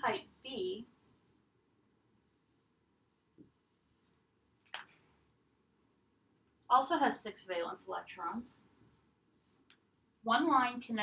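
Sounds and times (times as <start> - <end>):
marker writing on whiteboard: 2.2 - 4.3.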